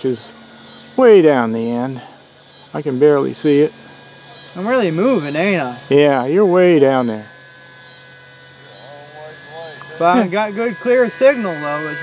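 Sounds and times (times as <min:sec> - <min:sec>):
electrical buzz: 0:00.0 - 0:12.0.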